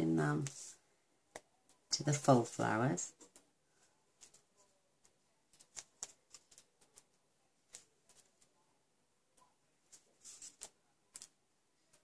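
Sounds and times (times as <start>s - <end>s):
faint clicks and taps: 3.1s - 8.6s, 9.3s - 12.0s.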